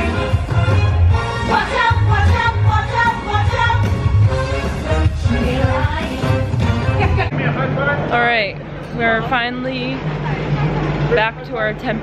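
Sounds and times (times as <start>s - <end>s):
woman talking: 8.1s - 12.0s.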